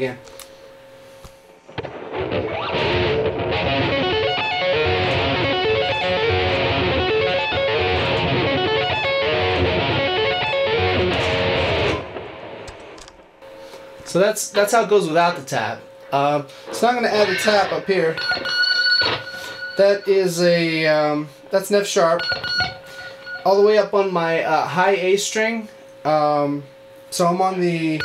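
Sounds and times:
fast electric guitar arpeggio: 0:02.1 - 0:12.4.

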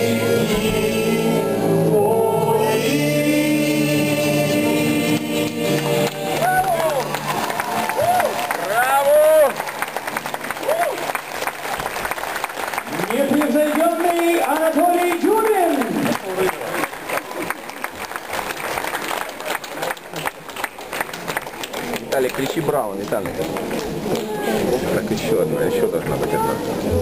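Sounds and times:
audience applauding: 0:05.1 - 0:26.2.

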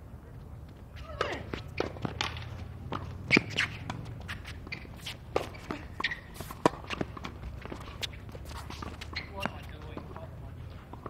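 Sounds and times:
footsteps on court: 0:00.3 - 0:11.0.

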